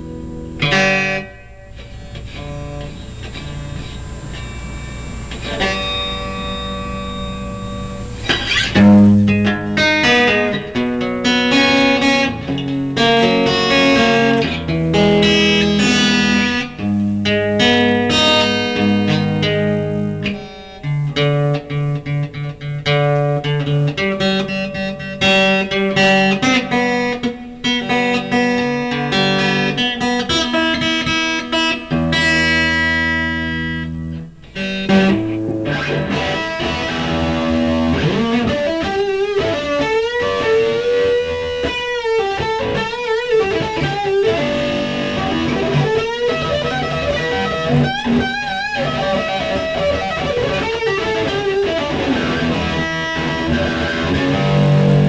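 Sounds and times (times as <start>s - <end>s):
electric guitar chords and riffs: 0.0s - 55.0s.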